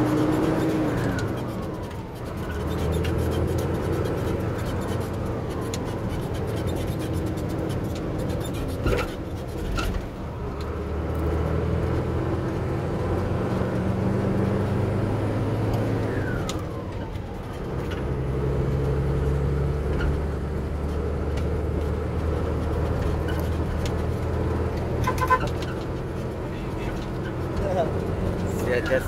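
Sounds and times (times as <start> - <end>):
road noise: 0.0 - 29.0
truck engine running: 0.0 - 29.0.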